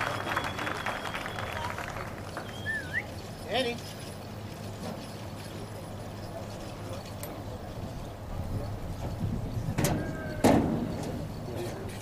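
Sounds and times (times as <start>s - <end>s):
outdoor background noise: 0.0s - 12.0s.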